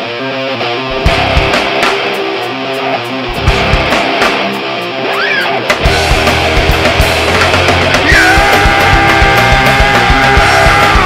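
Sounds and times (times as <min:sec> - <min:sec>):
bass guitar: 0:00.0 - 0:11.0
distorted electric guitar chords: 0:00.0 - 0:11.0
heavy drums: 0:00.9 - 0:11.0.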